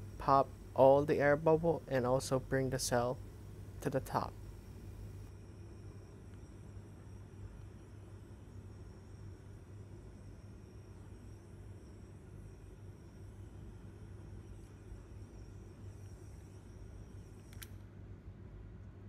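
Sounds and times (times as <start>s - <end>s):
faint low hum: 0.0s - 19.0s.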